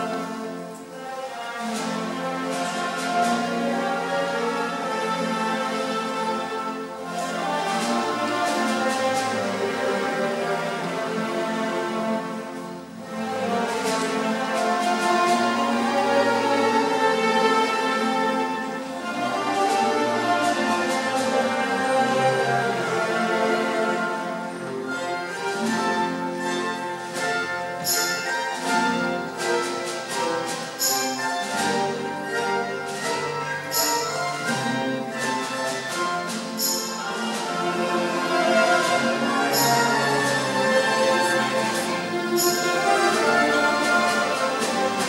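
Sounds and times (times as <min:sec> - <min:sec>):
mandolin and guitar orchestra: 0:00.0 - 0:45.0.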